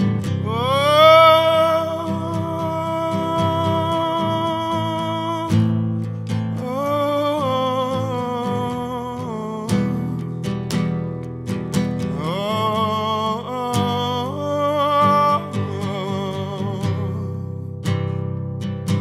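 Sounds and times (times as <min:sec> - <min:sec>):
acoustic guitar: 0:00.0 - 0:19.0
wordless held vocal notes: 0:00.4 - 0:05.8.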